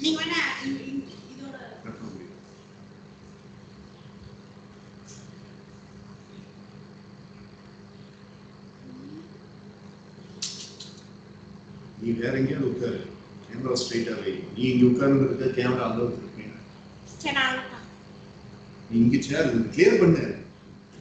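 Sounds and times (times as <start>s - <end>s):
low electrical hum: 0.0s - 21.0s.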